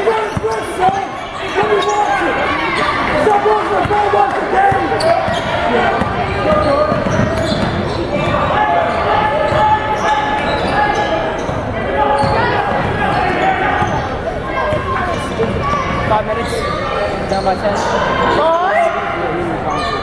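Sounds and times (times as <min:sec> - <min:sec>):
voices calling out echoing: 0:00.0 - 0:20.0.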